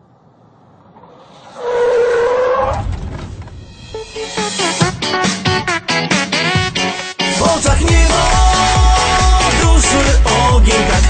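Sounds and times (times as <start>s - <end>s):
car approaching: 0.0s - 4.4s
tyres screeching: 1.0s - 4.8s.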